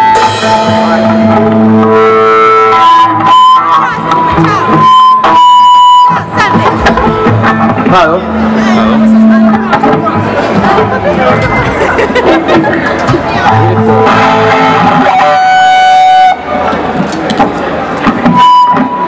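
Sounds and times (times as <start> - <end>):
crowd voices: 0.0 - 19.0
electric guitar noodling: 0.0 - 19.0.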